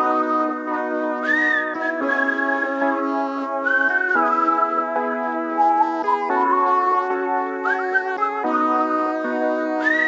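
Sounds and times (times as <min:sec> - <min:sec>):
instrumental pop music: 0:00.0 - 0:10.0.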